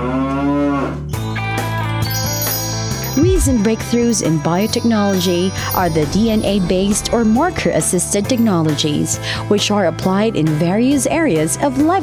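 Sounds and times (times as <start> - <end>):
cow mooing: 0.0 - 1.0
background music: 1.1 - 12.0.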